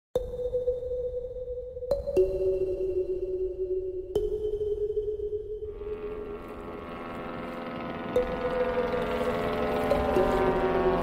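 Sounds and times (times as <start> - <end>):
electronic intro tone: 5.7 - 11.0
jet engines whining: 5.7 - 11.0.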